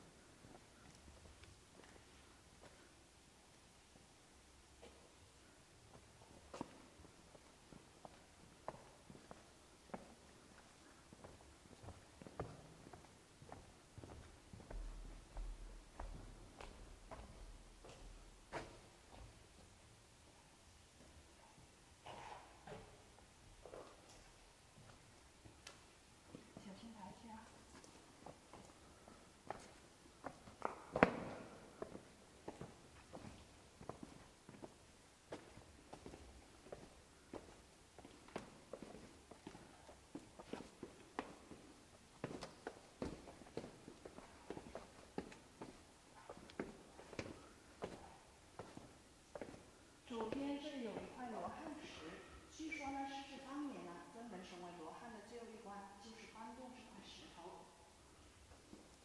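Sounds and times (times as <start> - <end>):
footsteps on stairs: 8.0 - 19.7, 27.8 - 51.1.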